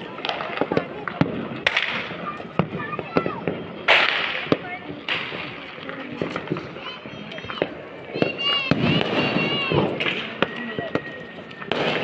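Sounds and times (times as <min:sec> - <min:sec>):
firecrackers popping: 0:00.0 - 0:12.0
people's voices: 0:00.0 - 0:12.0
thin steady high tone: 0:06.8 - 0:12.0.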